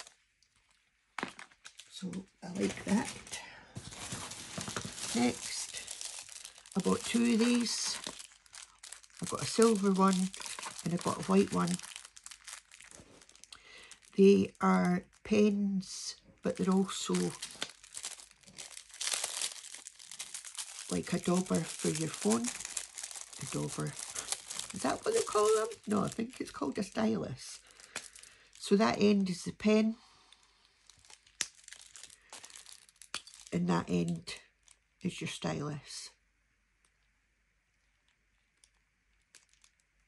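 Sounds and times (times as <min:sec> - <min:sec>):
plastic packaging crinkling: 0:00.0 - 0:15.6, 0:16.4 - 0:29.4, 0:30.6 - 0:35.0, 0:37.8 - 0:40.0.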